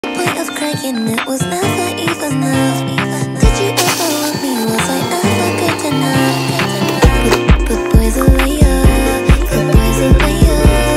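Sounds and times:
song with steady beat: 3.0s - 10.9s.

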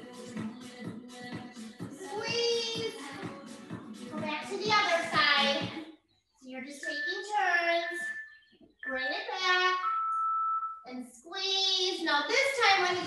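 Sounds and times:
high-pitched voice singing with music: 0.0s - 5.9s, 6.6s - 10.2s, 12.3s - 13.0s.

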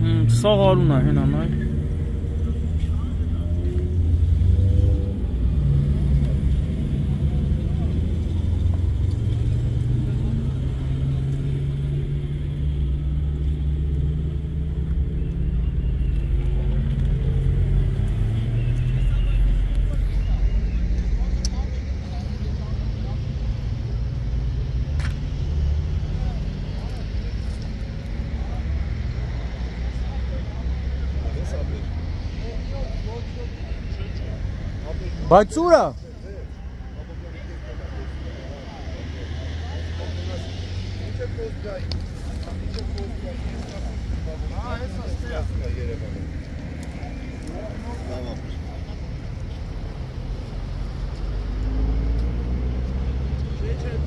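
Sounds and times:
road traffic rumble: 0.0s - 54.0s
faint voices: 14.7s - 54.0s.

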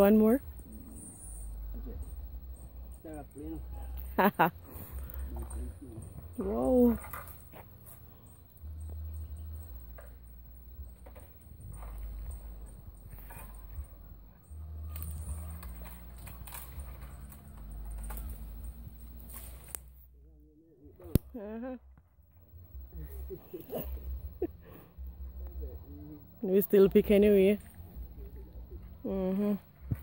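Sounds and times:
low rumble on microphone: 4.8s - 30.0s.

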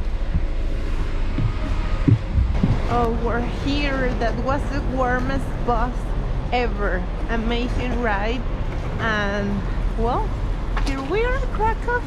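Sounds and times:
footsteps on metal bus steps: 0.0s - 5.4s
bus engine rumble: 0.0s - 12.0s.

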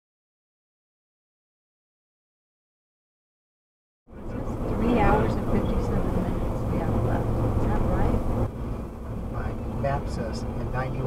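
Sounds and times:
car road and engine rumble: 4.1s - 11.0s
indistinct voices talking: 4.1s - 11.0s.

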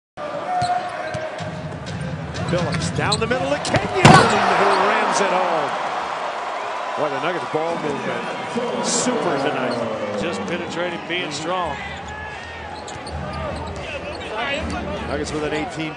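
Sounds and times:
arena crowd noise: 0.2s - 15.9s
basketball bouncing on court: 3.6s - 4.5s
shoe squeak: 12.0s - 14.5s.

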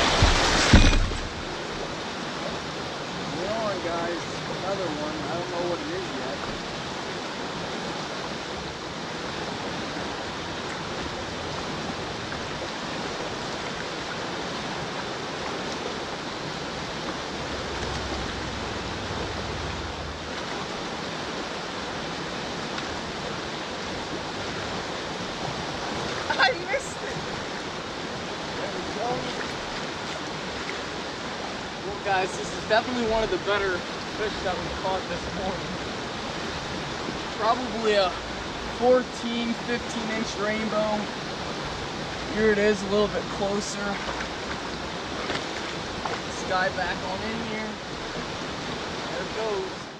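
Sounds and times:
river current rushing: 0.0s - 49.9s.

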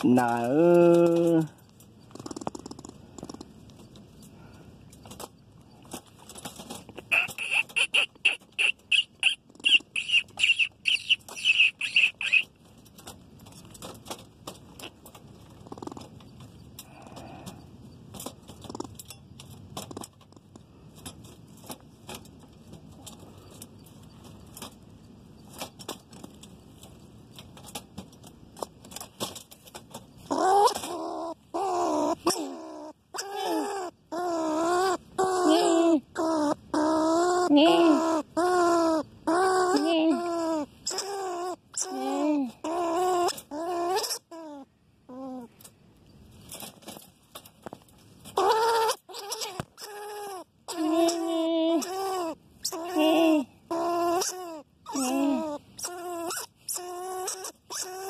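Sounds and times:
animal crying: 7.0s - 12.5s, 30.3s - 45.6s, 48.4s - 58.0s
groundhog high-pitched calls: 7.0s - 12.6s, 30.3s - 45.5s, 48.4s - 58.0s.

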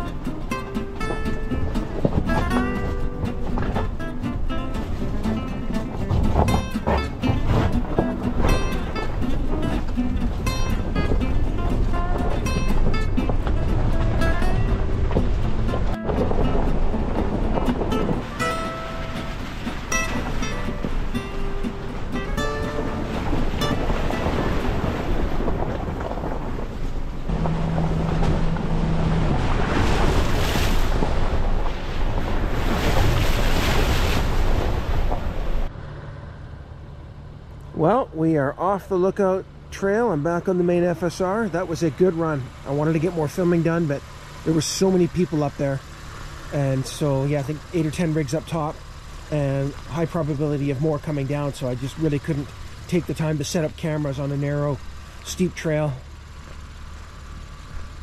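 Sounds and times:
background music melody: 0.0s - 24.9s
steady rushing noise: 0.0s - 35.9s.

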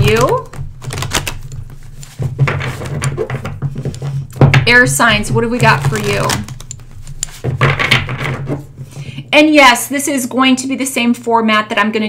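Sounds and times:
cards shuffling: 0.0s - 4.4s, 5.1s - 9.0s.

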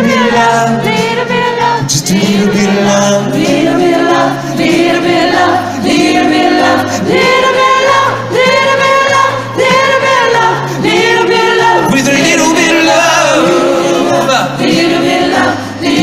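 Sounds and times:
voices singing slow pop ballad: 0.0s - 16.0s.

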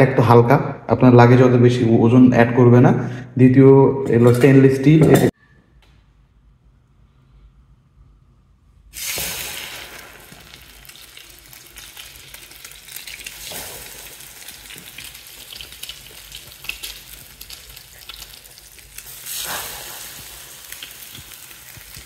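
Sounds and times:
bread frying in oil: 9.0s - 22.0s.

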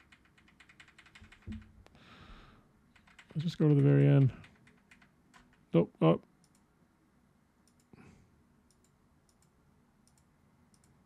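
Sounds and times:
computer keys clicking: 0.0s - 1.7s, 2.9s - 5.7s, 6.4s - 6.7s, 7.6s - 7.9s, 8.7s - 11.0s.

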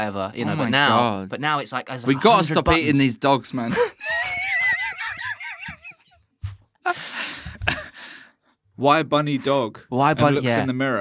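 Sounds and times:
man's high-pitched squealing laugh: 3.8s - 6.1s
soft chuckling: 4.1s - 6.0s.

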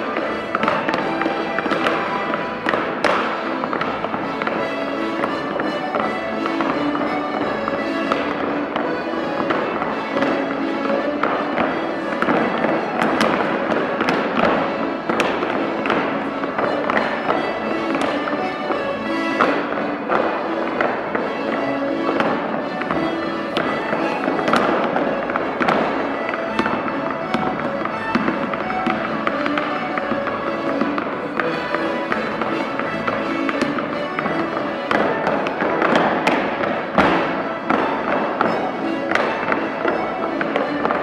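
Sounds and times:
live dance music: 0.0s - 41.0s.

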